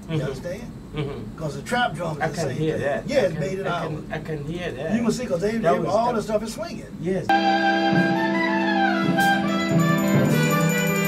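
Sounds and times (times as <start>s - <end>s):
saxophones and clarinet chords: 7.3s - 11.0s.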